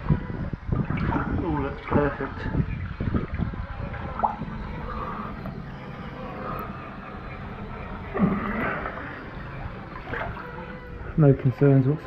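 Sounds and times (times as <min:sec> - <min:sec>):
water sloshing and gurgling: 0:00.0 - 0:12.0.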